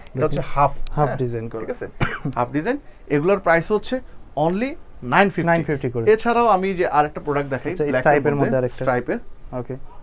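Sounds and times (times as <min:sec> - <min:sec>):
man talking: 0:00.0 - 0:09.9.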